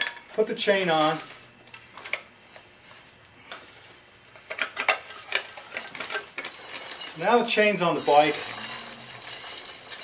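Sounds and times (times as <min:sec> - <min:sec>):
drive chain clinking on sprocket: 0:05.6 - 0:10.0.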